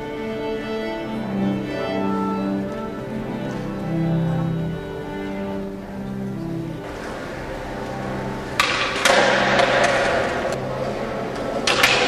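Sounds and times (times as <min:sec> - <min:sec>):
background music: 0:00.0 - 0:12.0
skateboard hitting concrete: 0:08.6 - 0:10.6.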